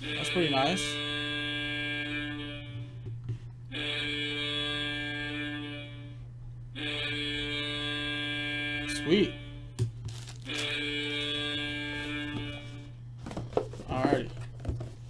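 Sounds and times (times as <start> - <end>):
hockey goal horn blasts: 0.0 - 3.0, 3.7 - 6.2, 6.8 - 9.7, 10.4 - 13.0
low electrical hum: 0.0 - 15.0.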